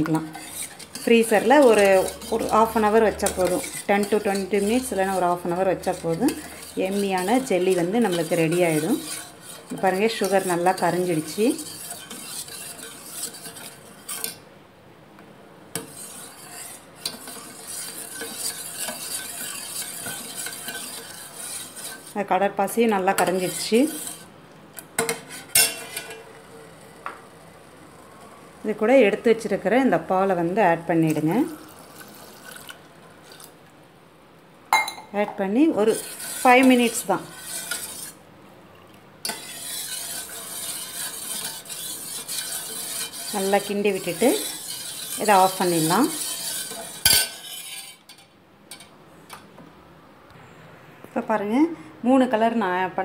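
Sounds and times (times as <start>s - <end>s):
ladle clinking against pot: 34.8s - 35.1s.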